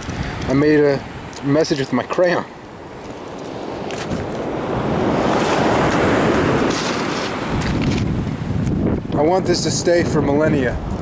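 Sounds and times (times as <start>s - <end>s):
wind buffeting microphone: 0.0s - 11.0s
ocean wave rushing in: 2.5s - 8.6s.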